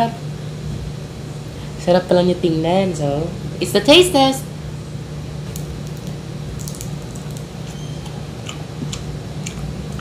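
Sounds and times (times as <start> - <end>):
steady low hum: 0.0 - 10.0
person chewing: 5.9 - 10.0.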